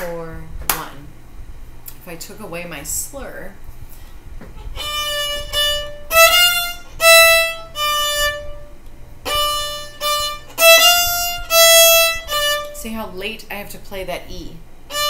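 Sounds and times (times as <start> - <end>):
solo violin phrase: 4.6 - 12.8.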